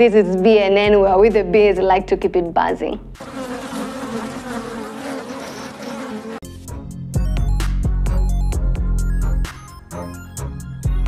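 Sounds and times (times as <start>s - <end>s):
music: 0.0s - 3.2s, 6.4s - 11.0s
honeybees buzzing: 3.2s - 6.5s.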